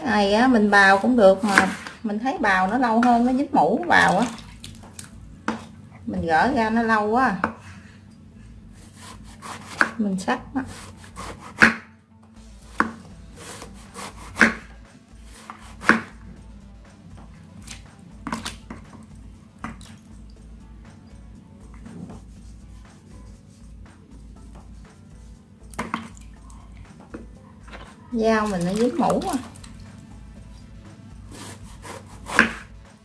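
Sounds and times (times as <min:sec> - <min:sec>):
knife chopping on wooden board: 0:01.4 - 0:02.0, 0:08.8 - 0:10.0, 0:10.7 - 0:11.8, 0:12.7 - 0:14.7, 0:15.3 - 0:16.2, 0:31.3 - 0:32.7.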